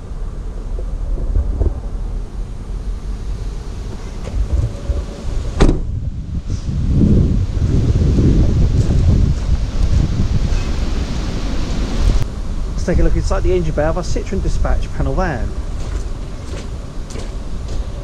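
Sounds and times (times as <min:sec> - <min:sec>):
wind buffeting microphone: 0:00.0 - 0:18.0
sharp knock: 0:05.6 - 0:05.9.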